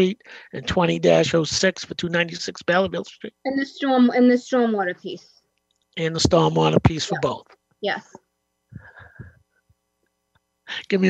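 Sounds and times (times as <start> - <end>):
person speaking: 0.0 - 5.2, 6.0 - 8.1, 8.8 - 9.3.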